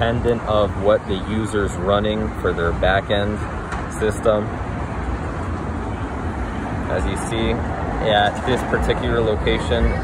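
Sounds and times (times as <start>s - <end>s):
low rumble of cars: 0.0s - 10.0s.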